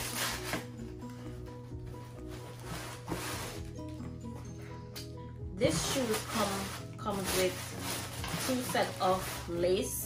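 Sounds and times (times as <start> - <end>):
tissue paper rustling: 0.0 - 1.2, 1.9 - 3.9, 5.6 - 10.0
soft background music: 0.0 - 10.0.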